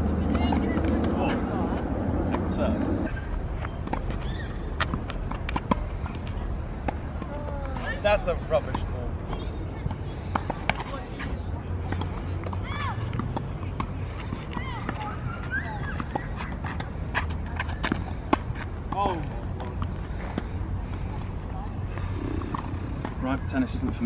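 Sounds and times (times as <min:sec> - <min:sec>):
tennis ball bouncing on hard court: 0:00.2 - 0:01.4, 0:11.9 - 0:20.5.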